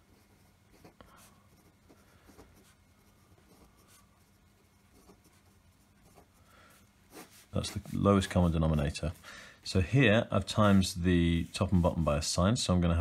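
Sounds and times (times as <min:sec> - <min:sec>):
pen scratching on paper: 0:00.0 - 0:06.4, 0:07.0 - 0:08.9.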